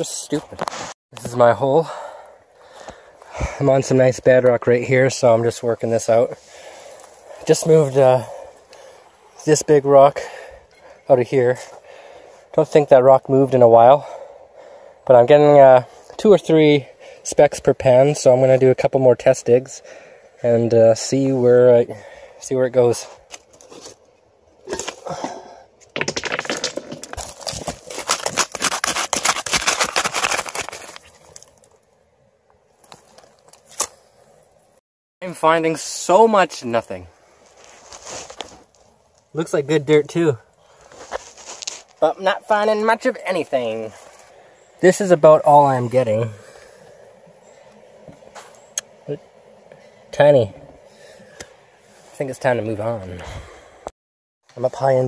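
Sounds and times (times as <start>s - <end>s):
stones crackling: 23.0s - 31.8s, 40.7s - 42.8s
gravel being scraped: 26.0s - 31.6s, 37.4s - 38.8s, 40.8s - 42.1s.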